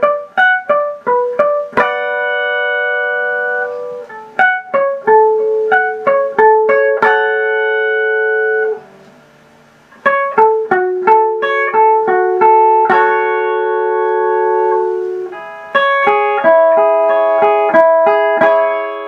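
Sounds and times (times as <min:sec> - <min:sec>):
clean electric guitar melody: 0:00.0 - 0:19.0.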